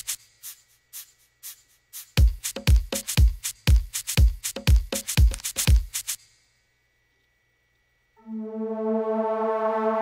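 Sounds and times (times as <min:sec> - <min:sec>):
high percussion ticks: 0:00.0 - 0:06.3.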